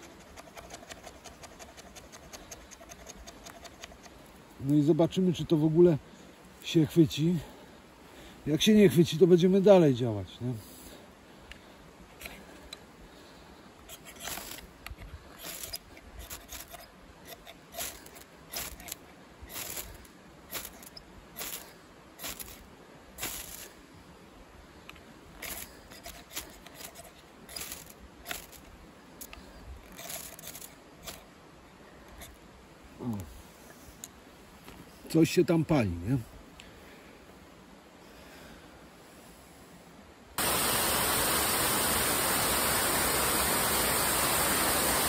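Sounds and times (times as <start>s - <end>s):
ferro rod scraping knife spine: 0.0s - 4.2s, 13.8s - 14.7s, 15.4s - 22.6s, 25.4s - 31.2s.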